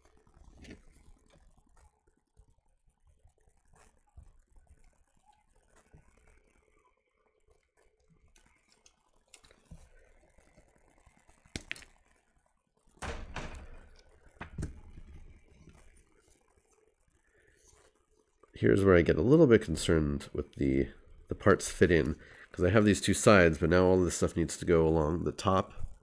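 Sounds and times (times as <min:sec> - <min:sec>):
plastic frame tapping and rattling: 0:13.0 - 0:15.4.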